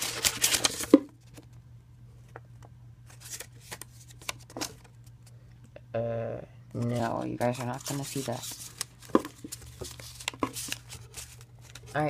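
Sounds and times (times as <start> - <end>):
paper cards rustling: 0.0 - 1.6, 3.1 - 5.4, 6.8 - 12.0
steady low hum: 0.0 - 12.0.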